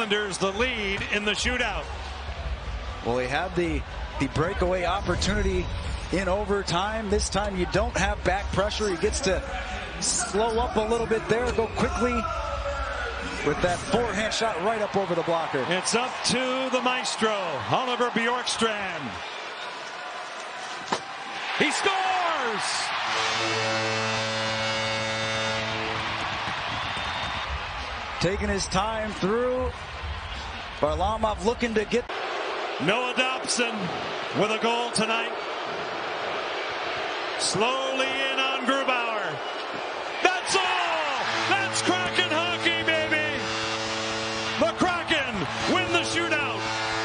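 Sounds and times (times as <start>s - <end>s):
crowd cheering and clapping: 0.0s - 47.0s
goal horn long steady note: 22.9s - 27.6s, 41.1s - 47.0s
excited voices shouting: 40.1s - 43.2s.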